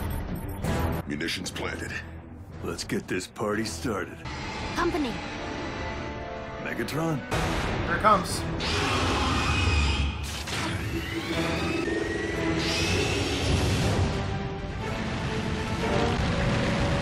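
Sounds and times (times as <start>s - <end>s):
dramatic soundtrack music: 0.0s - 17.0s.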